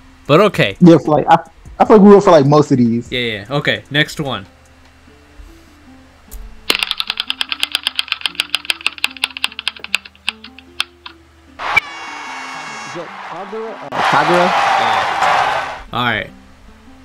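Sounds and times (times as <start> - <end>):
soft background music: 0.0 - 11.8, 12.5 - 17.0
spinning wheel ticking: 6.7 - 11.1.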